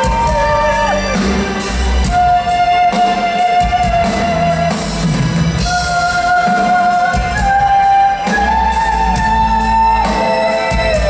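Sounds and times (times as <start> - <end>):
drums and guitars: 0.0 - 11.0.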